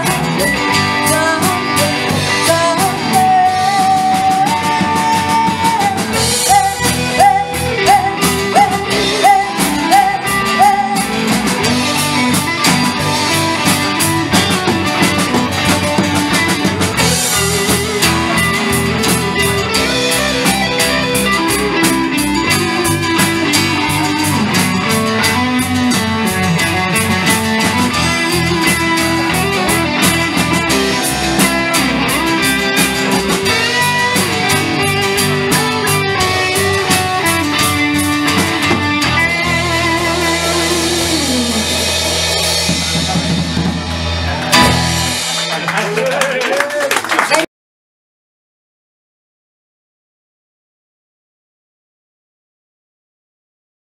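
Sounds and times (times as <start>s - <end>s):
electric lead guitar: 0.0s - 46.5s
drum kit beating: 0.0s - 47.4s
live rock band playing: 0.0s - 47.5s.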